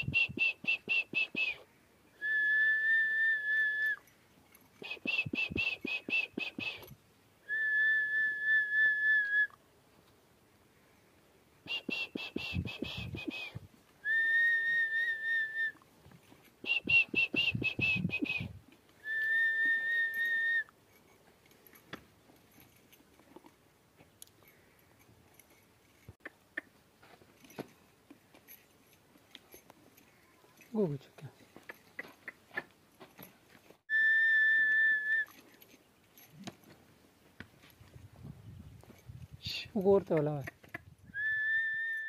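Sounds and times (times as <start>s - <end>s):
person whistling high notes: 0.0s - 1.6s, 2.2s - 4.0s, 4.9s - 6.9s, 7.5s - 9.6s, 11.7s - 15.8s, 16.7s - 20.7s, 33.9s - 35.3s, 41.2s - 42.0s
short high chirping: 4.8s - 7.0s, 11.7s - 13.6s.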